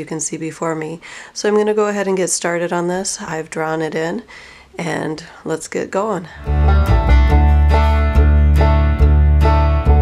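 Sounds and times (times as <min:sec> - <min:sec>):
steady bass: 0:06.4 - 0:10.0
upbeat bluegrass plucked strings: 0:06.4 - 0:10.0.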